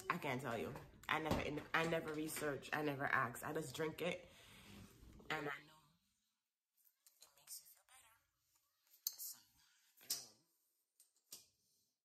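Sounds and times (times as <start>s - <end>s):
woman whispering: 7.0s - 9.8s.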